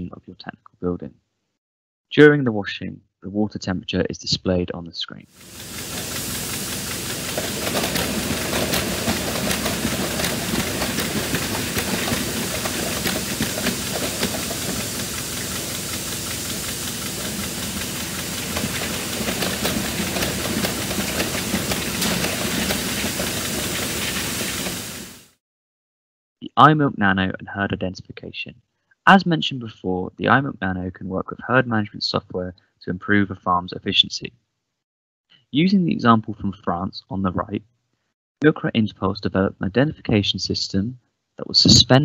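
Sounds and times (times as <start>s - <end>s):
water and air rushing hiss: 5.4s - 25.3s
low machine hum: 5.5s - 25.2s.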